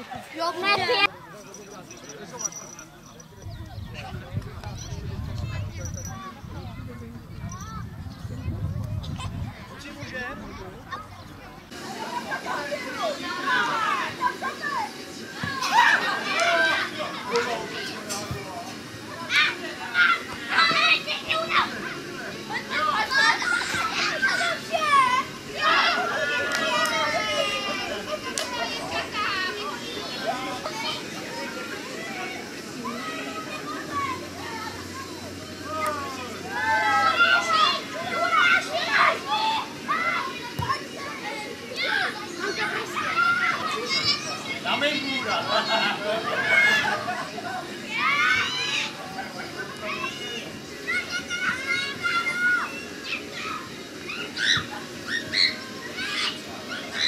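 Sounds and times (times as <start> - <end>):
background chatter: 0.0 - 57.0
children shouting: 11.8 - 18.0, 19.1 - 57.0.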